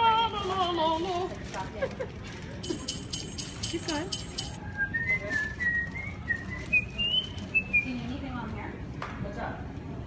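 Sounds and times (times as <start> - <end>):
person whistling a tune: 4.6 - 7.7.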